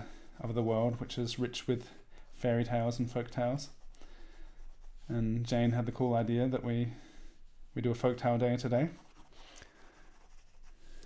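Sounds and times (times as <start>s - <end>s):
pencil sketching on paper: 2.6s - 5.8s, 8.5s - 11.0s.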